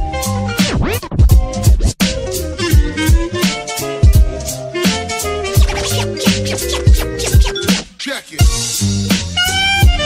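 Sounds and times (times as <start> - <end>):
instrumental beat music: 0.0 - 10.0.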